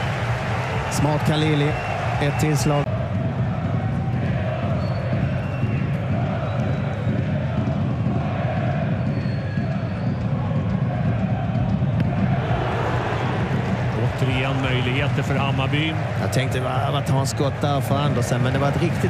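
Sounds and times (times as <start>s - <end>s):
stadium crowd singing and chanting: 2.8s - 19.0s.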